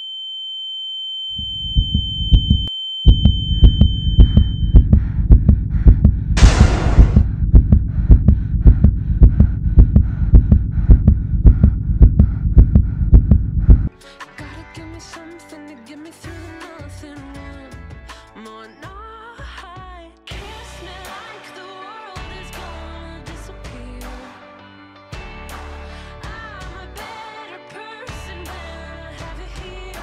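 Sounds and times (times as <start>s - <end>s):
high ear-ringing tone: 0.0s - 4.8s
deep heartbeat: 1.4s - 13.9s.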